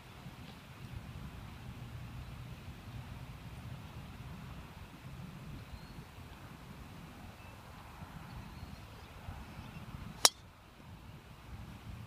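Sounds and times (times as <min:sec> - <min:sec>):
golf club striking ball: 0:10.2 - 0:10.5.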